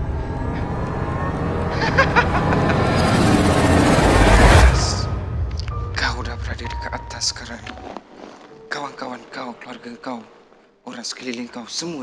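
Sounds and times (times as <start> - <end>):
rising noisy rush: 0.0 - 6.8
low rumbling drone: 0.0 - 7.8.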